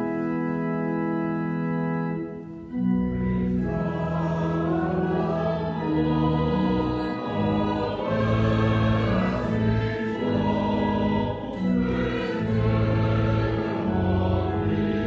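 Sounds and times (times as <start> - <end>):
choir singing a hymn: 2.7 - 15.0.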